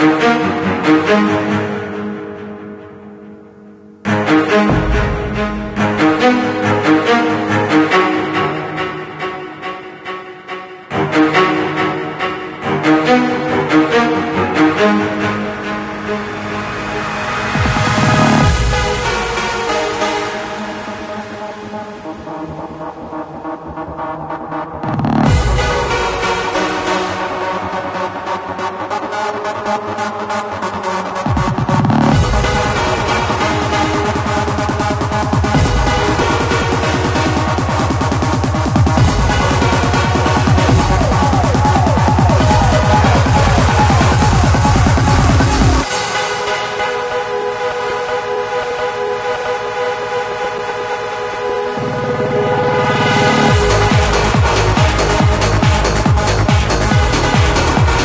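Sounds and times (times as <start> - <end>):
held synth chords: 0.0 - 58.0
quickening drum hits: 4.7 - 6.4, 34.0 - 45.8
trance beat with deep bass: 4.7 - 7.0, 17.6 - 20.3, 22.0 - 46.5, 53.0 - 58.0.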